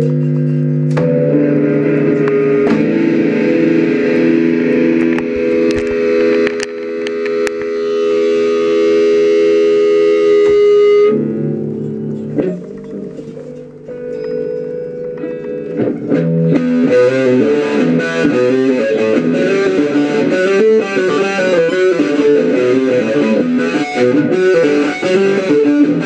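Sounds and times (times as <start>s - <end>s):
electric guitar sustained chords: 0.0s - 26.0s
sharp clicks and knocks: 5.0s - 7.8s.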